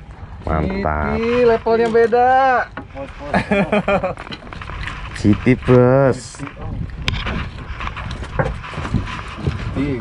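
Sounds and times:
people talking indistinctly: 0.4s - 4.0s, 5.0s - 7.1s.

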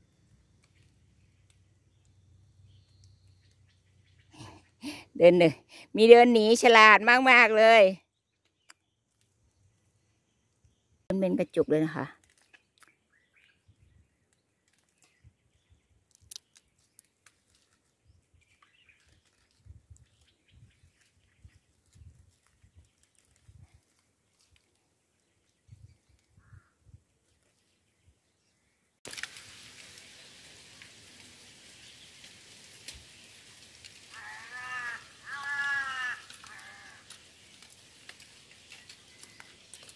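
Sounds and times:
background noise: 0.0s - 39.9s
bird calls: 34.1s - 37.7s.

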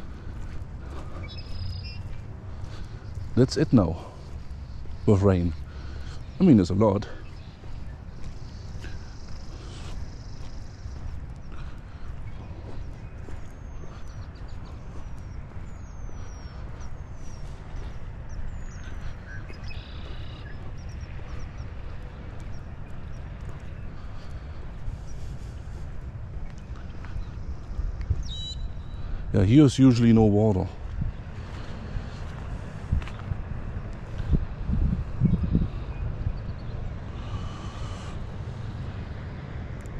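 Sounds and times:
high falling bird calls: 0.0s - 33.2s
footsteps on wet pavement: 0.0s - 39.9s.

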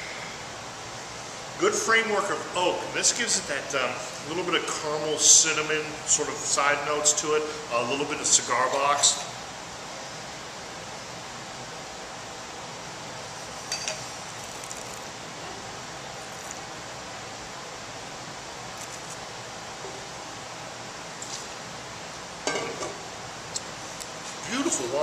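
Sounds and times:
room hiss: 0.0s - 25.0s.

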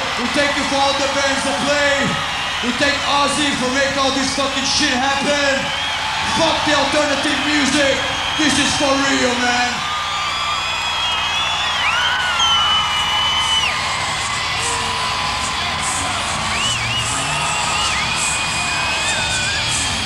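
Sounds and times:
concert crowd cheering: 0.0s - 20.0s
yells and whoops: 0.0s - 20.0s.

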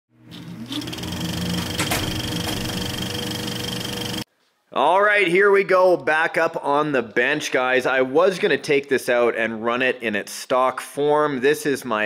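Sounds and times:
mechanical whirring buzz with rattle: 0.4s - 4.3s.

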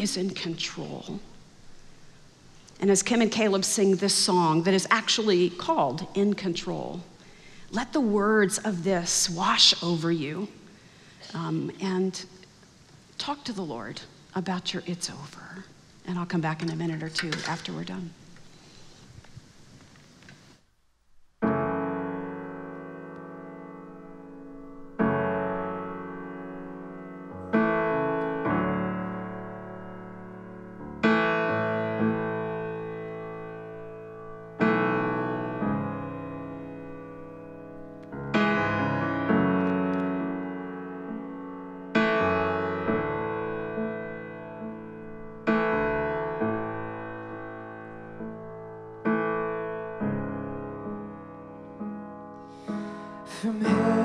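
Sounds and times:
keyboard piano chords: 21.4s - 54.0s.

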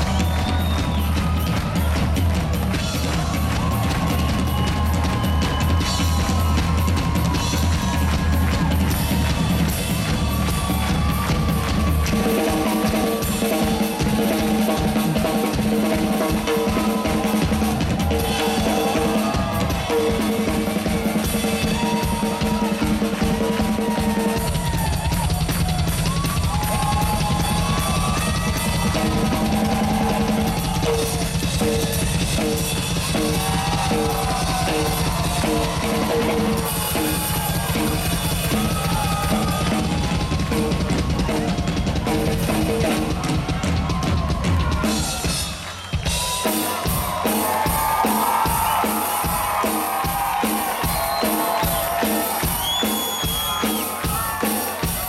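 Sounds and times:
drum kit played hard: 0.0s - 55.0s
heavy bass drum: 0.0s - 55.0s.

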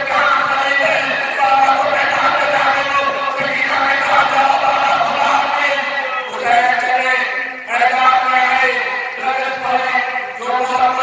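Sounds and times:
man chanting over loudspeakers: 0.0s - 11.0s.

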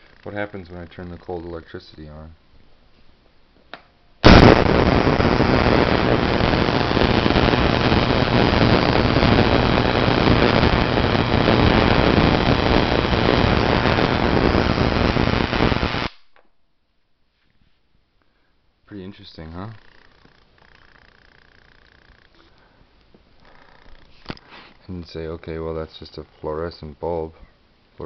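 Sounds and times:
spark gap crackling buzz: 4.2s - 16.4s.

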